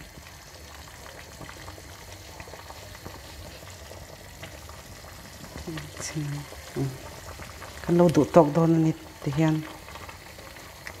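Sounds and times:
water boiling and bubbling: 0.0s - 11.0s.

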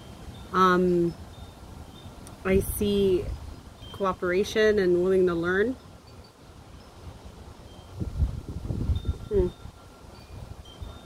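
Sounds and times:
wind buffeting microphone: 0.3s - 4.8s, 5.4s - 11.0s.

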